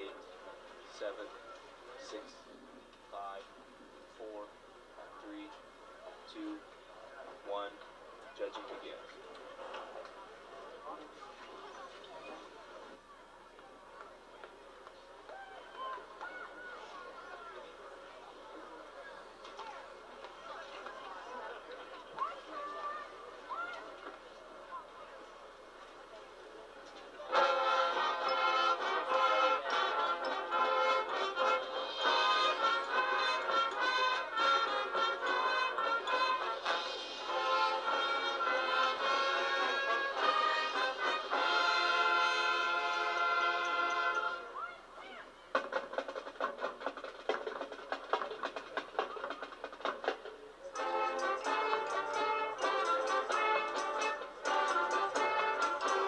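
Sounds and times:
marching band playing chords: 27.3s - 44.5s, 45.5s - 56.0s.

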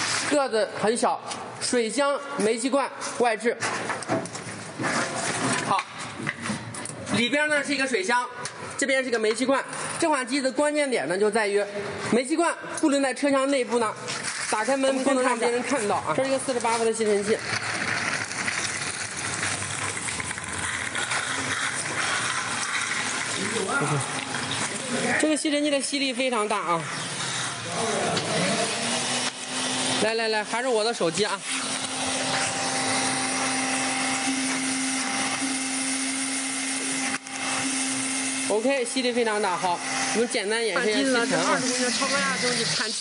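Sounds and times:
steam washer hissing: 0.0s - 0.4s, 26.5s - 43.0s
vacuum cleaner running: 26.6s - 43.0s.

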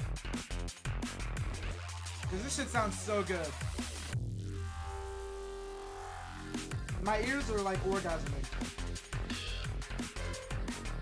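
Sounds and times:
deep bass: 0.0s - 11.0s
held synth chord: 4.2s - 7.0s.

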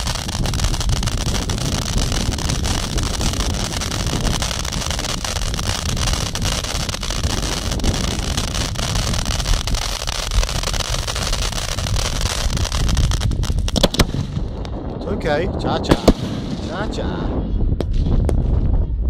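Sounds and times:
fireworks crackling: 0.0s - 18.6s
ground fireworks roaring: 0.0s - 18.8s
wind buffeting microphone: 0.0s - 19.0s.

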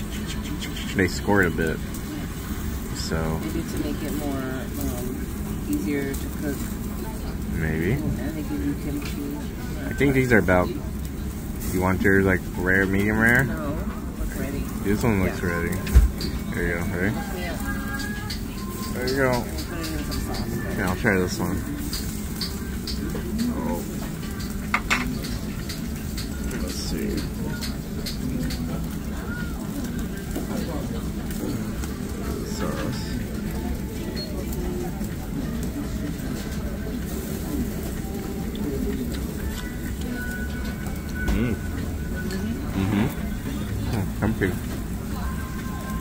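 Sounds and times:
background chatter: 0.0s - 46.0s
meat sizzling on a grill: 0.0s - 46.0s.

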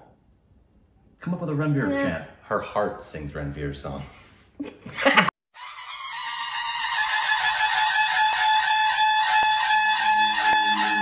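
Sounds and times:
buzzy tonal sound effect: 5.9s - 11.0s.

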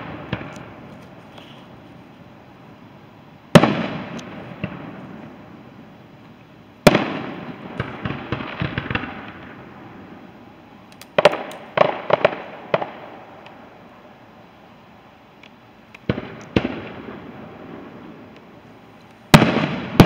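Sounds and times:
firework booms: 0.0s - 0.9s, 3.5s - 5.6s, 6.8s - 10.2s, 11.2s - 13.3s, 16.0s - 18.4s, 19.3s - 20.0s
crackling pops: 0.0s - 1.8s, 3.6s - 4.9s, 10.9s - 13.6s, 15.3s - 17.0s.

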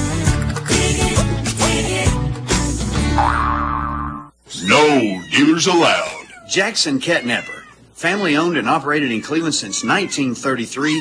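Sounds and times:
springy boing effect: 3.2s - 4.3s
loud cat meow: 4.6s - 6.5s.

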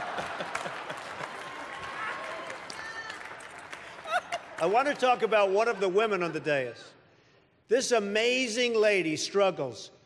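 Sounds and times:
audience laughing: 0.0s - 1.4s
audience applauding: 0.0s - 6.0s.

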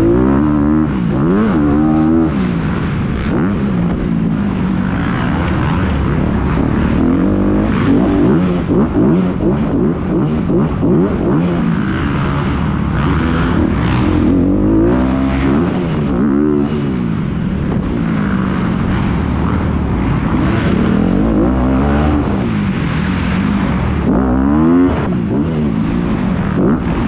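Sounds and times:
dirt bike engine revving: 0.0s - 27.0s.

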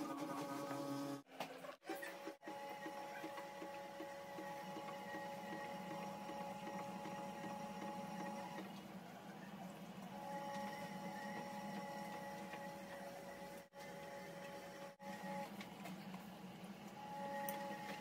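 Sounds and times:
washing machine motor whine: 0.0s - 18.0s.

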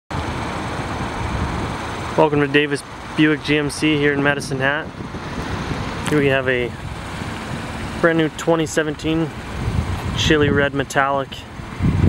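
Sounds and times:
outdoor rumble with hiss: 0.2s - 12.0s.

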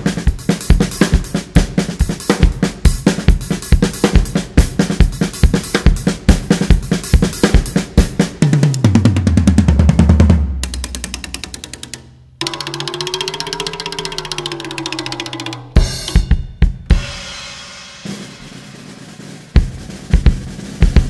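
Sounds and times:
drum kit playing steady beat: 0.0s - 11.6s, 12.4s - 21.0s
fast even ticking: 10.6s - 16.3s.

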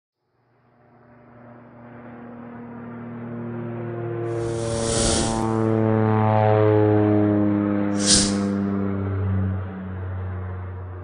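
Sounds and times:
short whoosh: 4.3s - 5.6s, 8.0s - 8.6s.

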